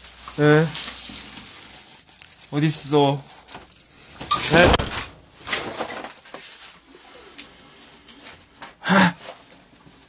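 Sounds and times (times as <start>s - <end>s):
rustling: 0.0s - 10.0s
person gasping: 8.8s - 9.4s.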